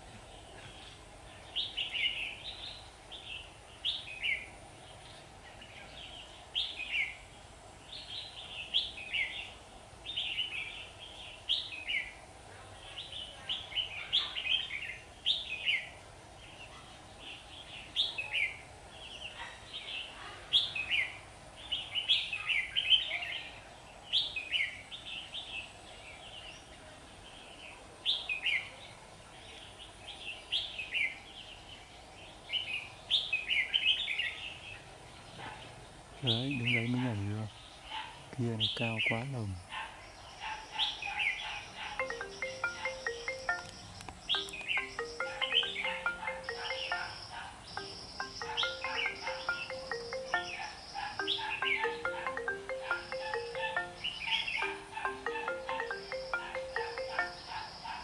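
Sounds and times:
bulbuls singing: 35.5s - 37.6s, 40.4s - 58.0s.

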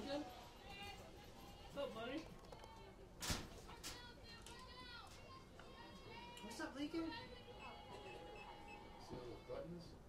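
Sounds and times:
high-pitched voices chattering: 3.8s - 9.4s.

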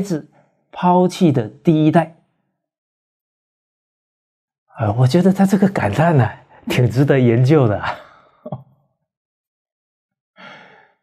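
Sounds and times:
man's short breath: 10.4s - 11.0s.

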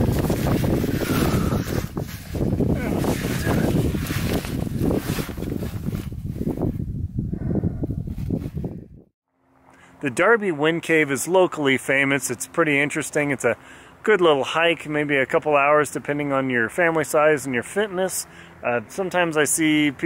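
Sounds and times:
person crawling over rock: 0.0s - 6.2s
wind noise on microphone: 0.0s - 9.1s.

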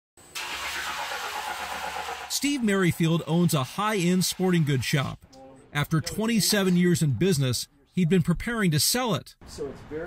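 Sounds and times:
grinding machine hiss: 0.4s - 5.1s.

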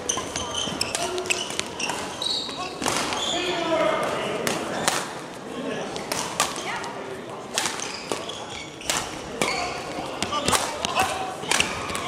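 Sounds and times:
shoes squeaking on court floor: 0.0s - 3.8s, 7.6s - 12.0s
rackets hitting shuttlecock: 0.1s - 3.3s, 4.0s - 5.2s, 5.9s - 6.6s, 7.5s - 12.0s.

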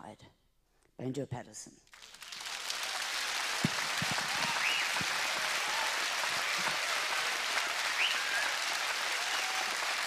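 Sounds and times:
audience applauding: 1.9s - 10.0s.

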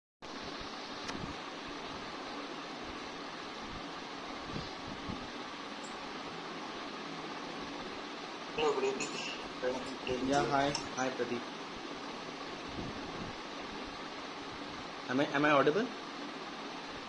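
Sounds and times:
steady background hiss: 0.2s - 17.0s.

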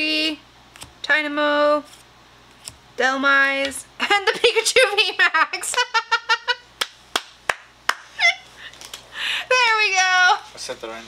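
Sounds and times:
excited laughter: 4.0s - 6.7s, 8.1s - 8.7s.

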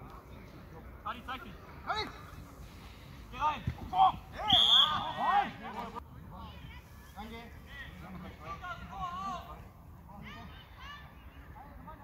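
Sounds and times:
players shouting: 3.3s - 6.0s
referee's whistle blast: 4.4s - 5.1s.

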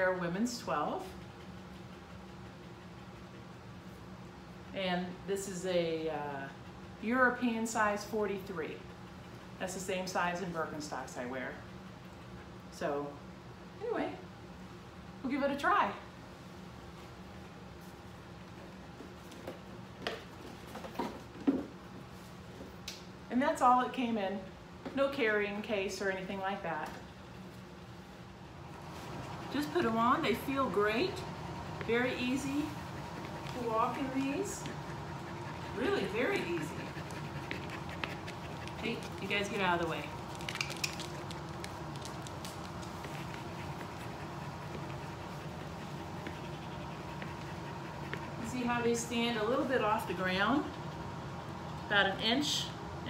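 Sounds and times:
steady low hum: 0.0s - 53.0s
claws clicking on hard floor: 40.1s - 44.1s.

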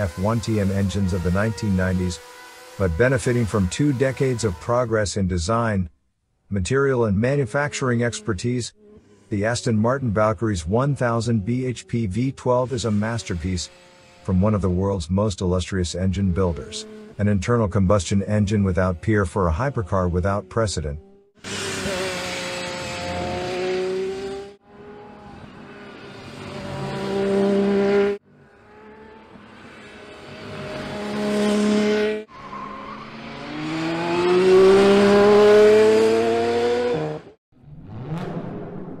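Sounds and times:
race car engine at high revs: 0.0s - 5.7s, 7.2s - 15.0s, 15.9s - 38.7s.

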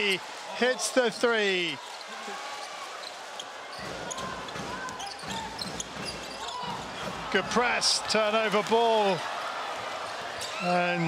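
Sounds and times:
sneaker squeaks on hardwood: 3.0s - 7.0s.

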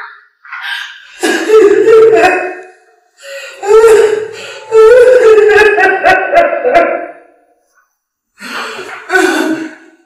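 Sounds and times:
woman crying and wailing: 3.5s - 7.0s.

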